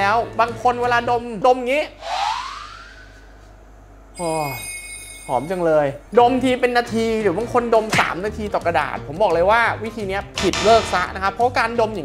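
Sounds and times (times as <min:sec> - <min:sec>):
rising whoosh sound effect: 0:02.0 - 0:03.3.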